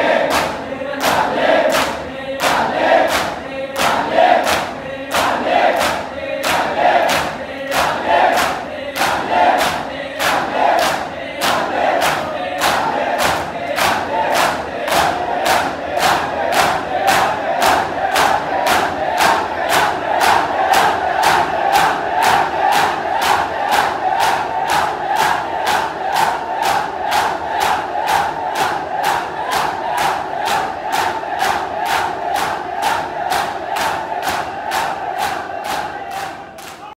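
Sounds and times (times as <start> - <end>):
crowd chanting and shouting: 0.0 - 36.9
hands slapping chests: 0.2 - 36.9.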